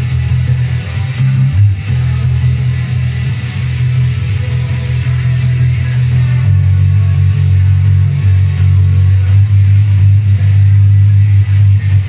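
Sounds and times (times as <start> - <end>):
electric bass line: 0.0 - 12.0
rock band: 0.0 - 12.0.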